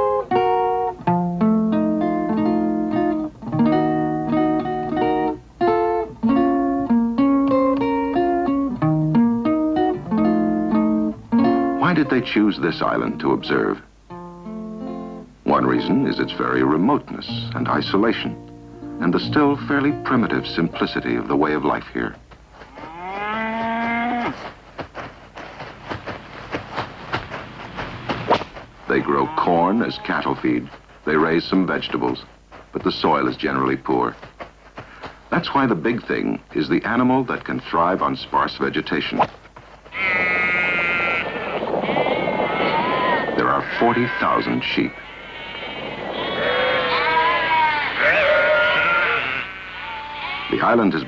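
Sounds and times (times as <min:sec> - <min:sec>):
sheep bleating: 0:22.6 - 0:24.5, 0:28.8 - 0:31.3, 0:39.9 - 0:51.0
cow mooing: 0:22.7 - 0:24.4, 0:29.0 - 0:30.4, 0:40.0 - 0:44.3, 0:44.9 - 0:50.6.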